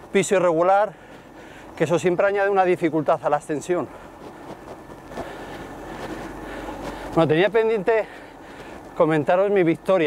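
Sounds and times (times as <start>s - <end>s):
vehicle road noise on asphalt: 0.0s - 10.0s.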